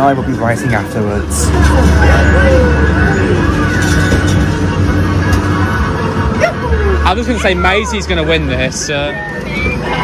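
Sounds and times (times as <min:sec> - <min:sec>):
kart engine drone: 0:00.0 - 0:10.0.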